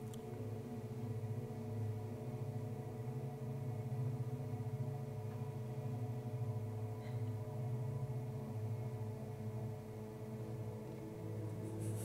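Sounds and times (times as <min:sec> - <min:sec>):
faint sustained tones: 0:00.0 - 0:12.0.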